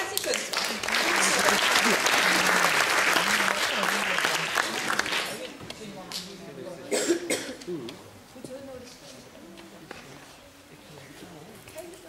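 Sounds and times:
indistinct voices talking in a hall: 0.0s - 12.0s.

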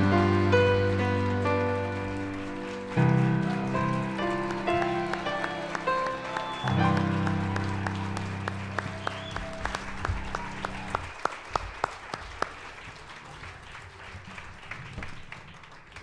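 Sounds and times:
audience applauding: 0.0s - 16.0s.

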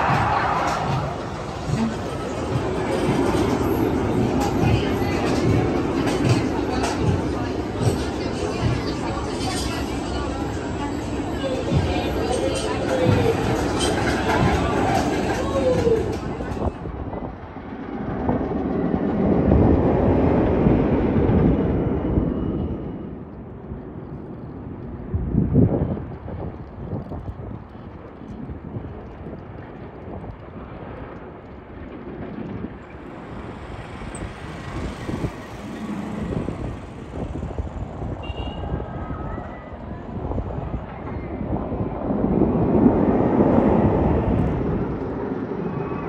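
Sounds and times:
roller coaster rumbling: 0.0s - 46.0s.

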